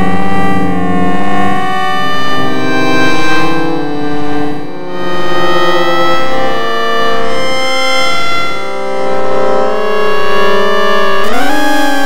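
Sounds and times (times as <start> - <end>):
electronic synthesizer chord: 0.0 - 12.0.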